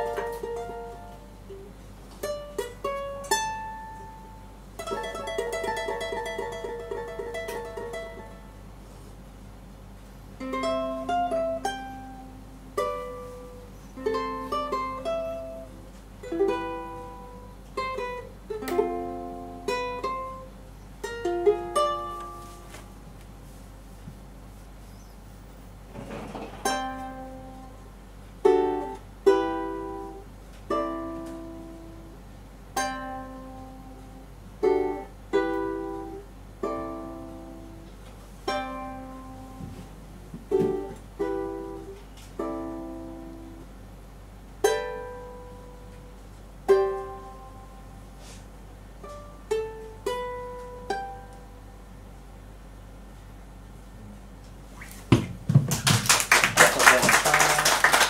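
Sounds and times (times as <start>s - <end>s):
solo ukulele fingerpicked: 0.0s - 8.7s, 10.4s - 23.0s, 26.6s - 43.8s, 44.5s - 52.5s.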